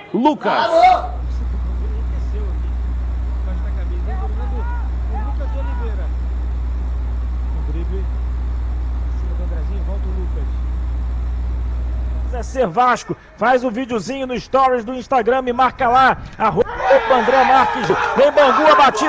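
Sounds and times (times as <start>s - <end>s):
faint voices: 0.0s - 13.4s
loud steady low hum: 0.7s - 19.0s.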